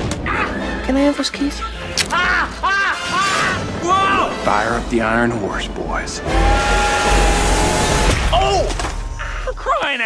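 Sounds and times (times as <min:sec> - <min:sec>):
steam whistle: 0:06.2 - 0:08.0.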